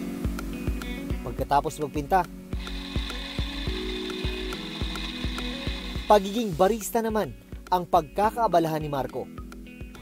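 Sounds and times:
background music beat: 0.0s - 10.0s
coffee grinder grinding beans: 2.6s - 6.5s.

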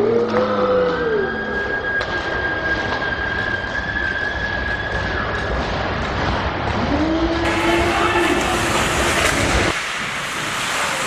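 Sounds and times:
slowed deep rumbling wash: 0.0s - 11.0s
hissy ice rink sound: 7.4s - 11.0s.

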